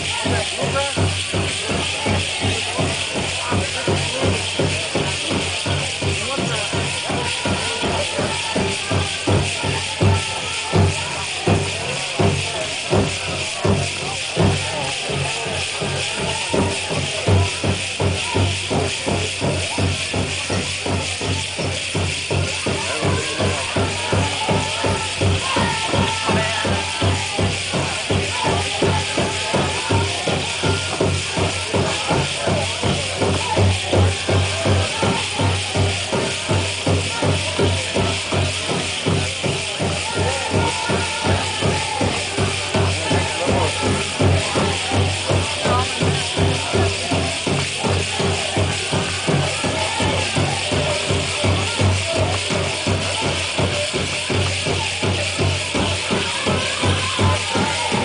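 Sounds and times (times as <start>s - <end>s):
bass drum beating: 0.0s - 58.0s
jingle dress cones rattling: 0.0s - 58.0s.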